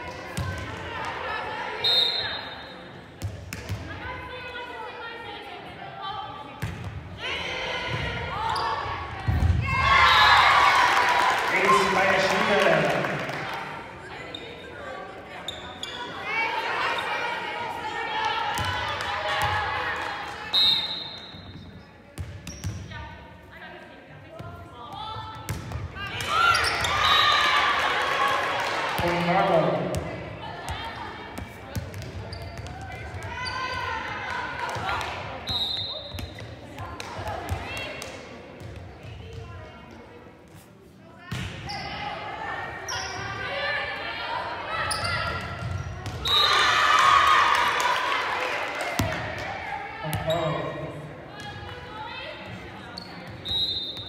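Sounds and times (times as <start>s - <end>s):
spectators shouting and cheering: 7.2s - 14.1s, 26.0s - 31.3s, 41.9s - 52.7s.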